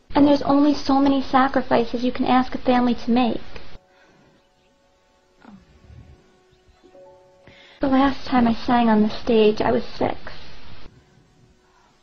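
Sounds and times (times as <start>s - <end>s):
soft sustained chord: 0.0s - 12.0s.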